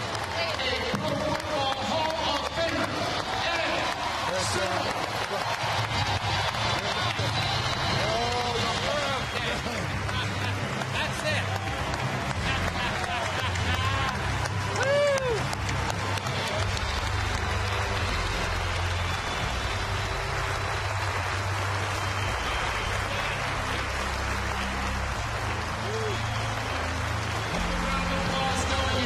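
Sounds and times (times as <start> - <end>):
crowd applauding: 0.0 - 29.0
voices whooping and cheering: 2.0 - 9.8, 11.2 - 25.0, 25.6 - 29.0.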